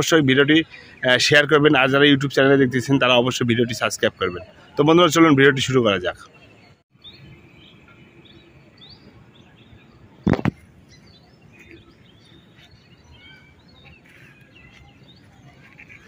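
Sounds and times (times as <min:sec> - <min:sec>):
bird chirps: 0:00.0 - 0:16.0.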